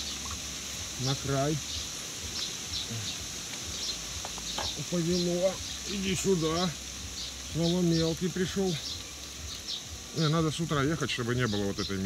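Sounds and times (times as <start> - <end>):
faint bird chirps: 0.0 - 12.0
insects humming: 0.0 - 12.0.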